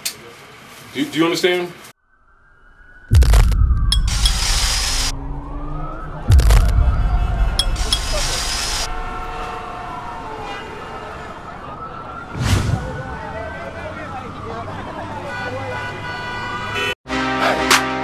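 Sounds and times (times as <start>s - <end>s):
siren wailing: 2.0s - 15.2s
heavy bass impacts: 3.1s - 9.3s.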